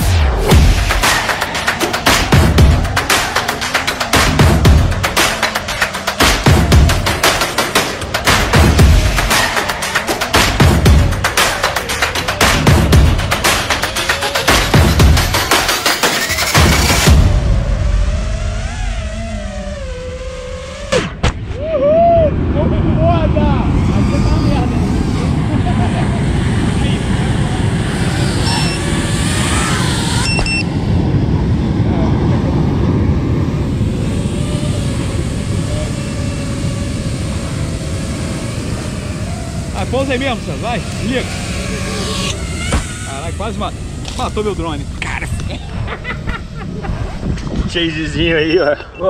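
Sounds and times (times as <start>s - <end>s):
music track: 0.0s - 19.8s
wind rushing on microphone: 21.4s - 49.0s.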